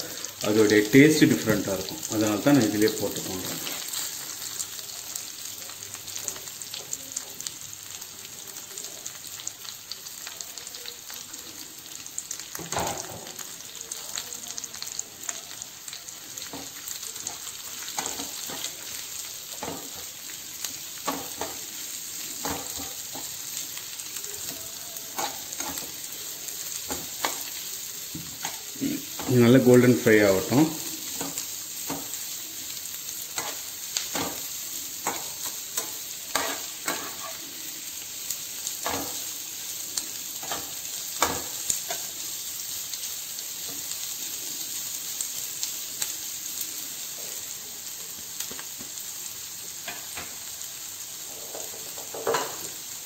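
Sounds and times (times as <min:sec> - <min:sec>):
onions sizzling in hot oil: 0:00.0 - 0:53.0
metal spatula scraping and clattering: 0:25.1 - 0:26.0, 0:33.4 - 0:37.5.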